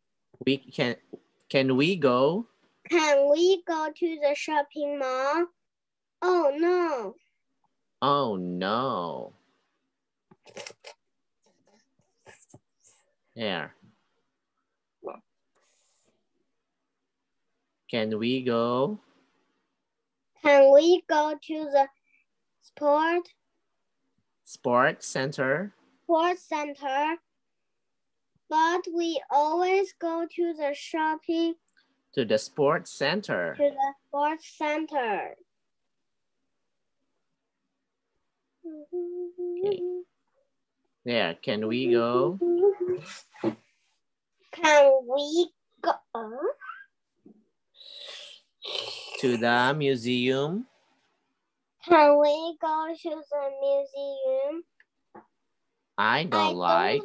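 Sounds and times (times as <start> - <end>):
person humming: 38.7 - 40.0, 42.2 - 43.2
person speaking: 41.1 - 43.6, 47.8 - 50.7, 56.0 - 57.0.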